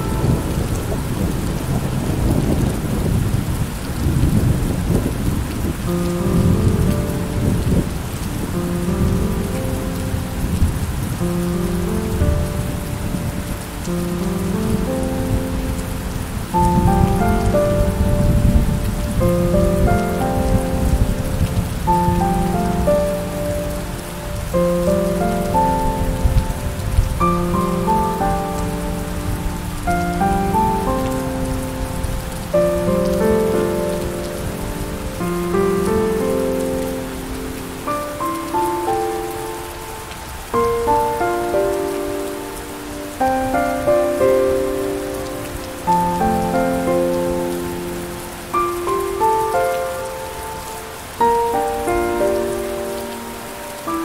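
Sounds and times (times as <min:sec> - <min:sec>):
gentle piano music: 0:00.0 - 0:54.0
steady rain: 0:00.0 - 0:54.0.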